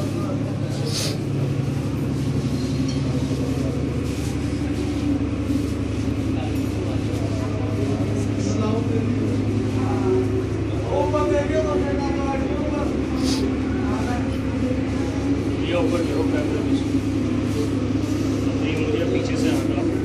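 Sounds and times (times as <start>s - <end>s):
indistinct voices: 0.0s - 20.0s
loud steady low hum: 0.0s - 20.0s.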